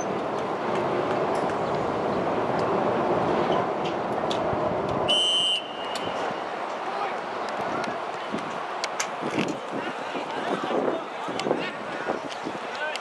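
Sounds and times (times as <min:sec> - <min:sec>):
outdoor background noise: 0:00.0 - 0:13.0
referee's whistle blast: 0:05.1 - 0:06.1
voices: 0:05.2 - 0:13.0.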